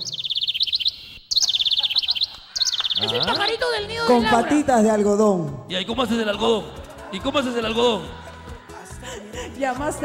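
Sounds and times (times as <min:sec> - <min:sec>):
bird-like chirping: 0:00.0 - 0:03.7.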